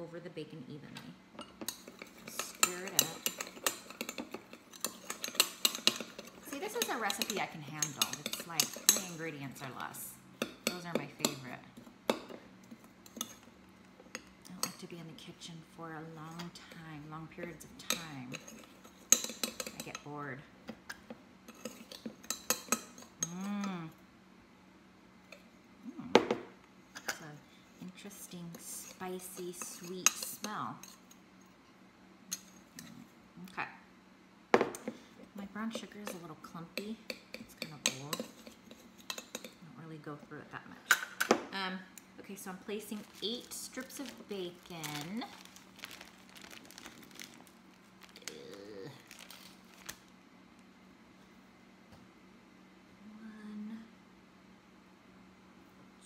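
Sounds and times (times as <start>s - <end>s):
packaging crinkling and rustling: 42.9s - 50.1s.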